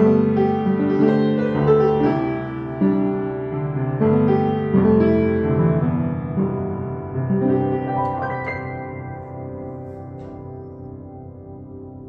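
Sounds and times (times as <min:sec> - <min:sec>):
upright piano chords: 0:00.0 - 0:12.0.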